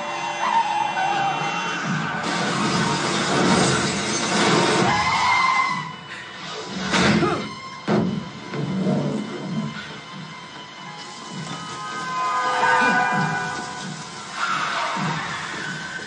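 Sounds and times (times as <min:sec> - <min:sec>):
film music over speakers: 0:00.0 - 0:16.0.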